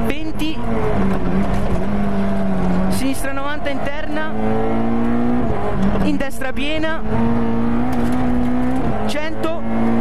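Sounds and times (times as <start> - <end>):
rally car engine at full throttle: 0.0 - 10.0.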